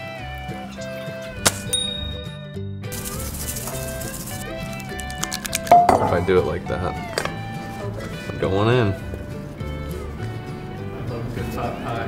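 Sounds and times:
background music: 0:00.0 - 0:12.0
shaker granules rattling: 0:02.9 - 0:05.8.

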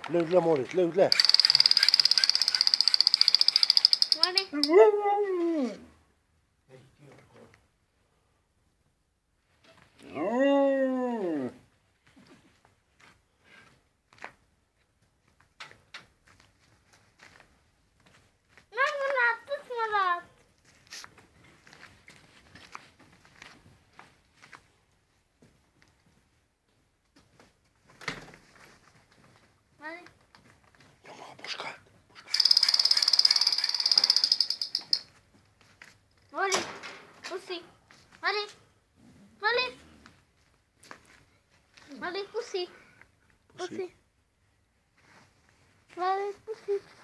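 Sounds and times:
toy gun electronic firing buzz: 0:01.1 - 0:04.5, 0:32.3 - 0:35.0
faint scuffs: 0:20.4 - 0:29.6, 0:44.9 - 0:47.0.

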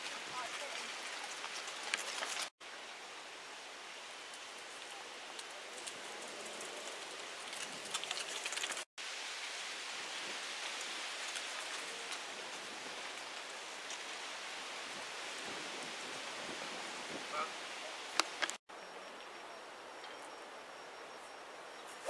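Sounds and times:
outdoor background hiss: 0:02.6 - 0:07.9, 0:09.0 - 0:22.0.

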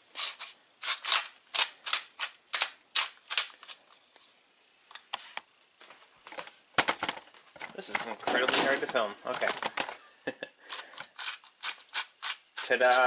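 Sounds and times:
pepper mill grinding: 0:00.2 - 0:03.8, 0:10.7 - 0:13.0.

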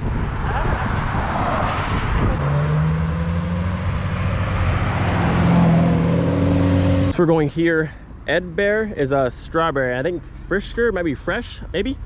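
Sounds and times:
traffic tyre and road noise: 0:00.0 - 0:12.0.

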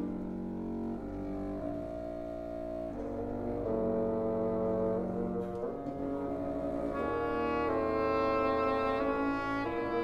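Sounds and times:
wind ensemble sustained chords: 0:00.0 - 0:10.0.

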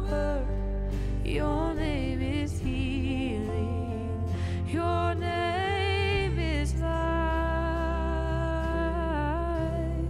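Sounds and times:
low instrumental accompaniment: 0:00.0 - 0:10.0.

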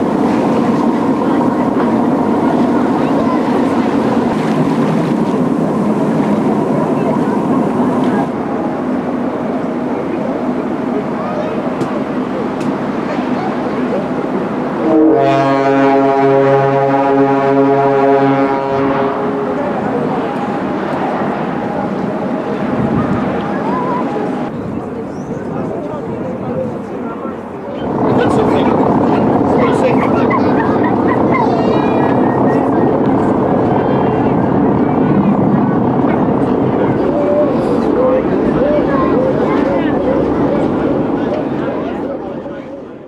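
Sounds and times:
dense wash of noise: 0:00.0 - 0:43.0
faint passengers' voices: 0:00.0 - 0:43.0
ship engine low rumble: 0:00.0 - 0:43.0
ship's horn long low blast: 0:14.7 - 0:24.5.

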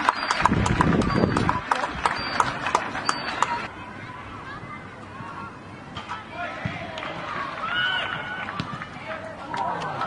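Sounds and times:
voices shouting: 0:03.0 - 0:10.0.

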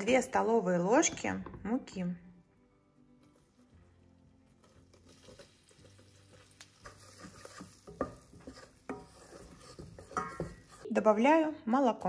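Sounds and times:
roux sizzling: 0:02.6 - 0:12.0
wooden spoon stirring in pot: 0:03.2 - 0:12.0
spoon knocking against pot: 0:07.9 - 0:10.8.

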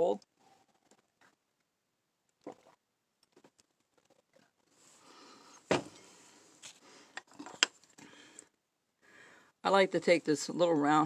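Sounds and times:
person sipping and swallowing: 0:02.4 - 0:03.5.

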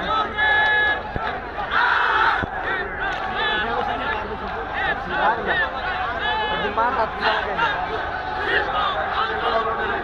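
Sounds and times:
crowd noise: 0:00.0 - 0:10.0
men shouting together: 0:01.6 - 0:10.0.

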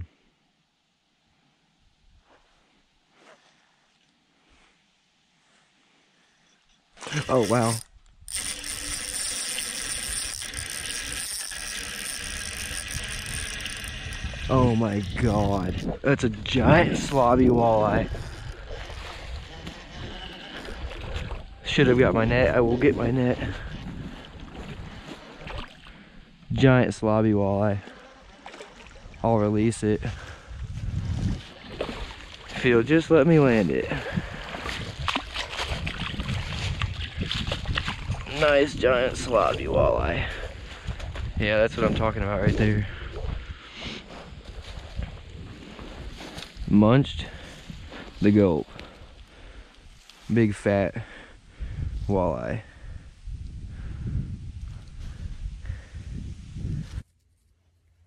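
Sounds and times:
fish splashing and thrashing: 0:07.0 - 0:16.0, 0:16.9 - 0:21.7, 0:23.0 - 0:26.4, 0:27.8 - 0:29.2, 0:30.2 - 0:32.8, 0:33.4 - 0:39.7
fishing reel whirring and ratcheting: 0:07.0 - 0:16.0, 0:17.1 - 0:21.3
small splashes and rustles: 0:18.0 - 0:21.7, 0:23.3 - 0:26.1, 0:27.8 - 0:29.3, 0:30.8 - 0:39.7.

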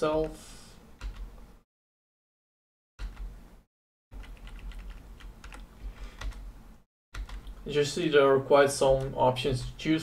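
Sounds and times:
keyboard keys clicking: 0:04.2 - 0:06.4, 0:07.2 - 0:07.6.

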